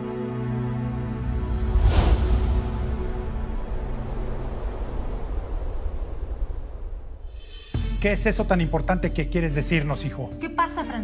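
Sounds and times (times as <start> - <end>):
whooshing transition effect: 1.4 - 7.8.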